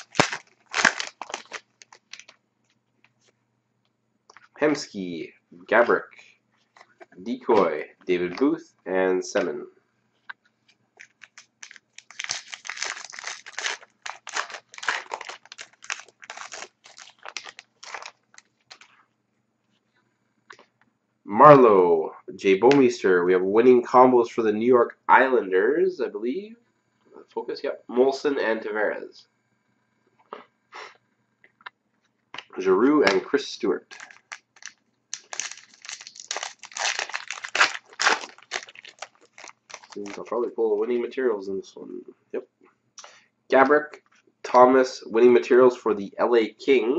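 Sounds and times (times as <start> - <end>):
foil wrapper crinkling: 0.0 - 2.4, 11.0 - 19.0, 33.9 - 40.4.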